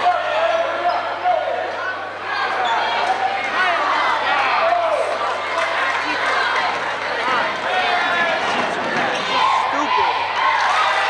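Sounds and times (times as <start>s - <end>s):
crowd chatter and shouts: 0.0s - 11.0s.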